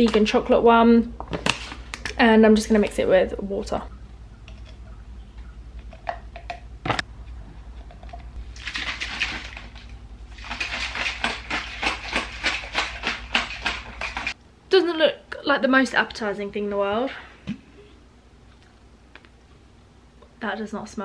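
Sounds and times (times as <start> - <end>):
shaker bottle sloshing: 7.9 - 14.4.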